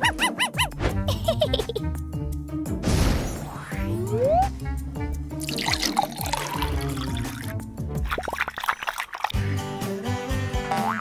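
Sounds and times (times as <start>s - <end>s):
background music: 0.0s - 11.0s
water poured into metal bowl: 5.4s - 9.4s.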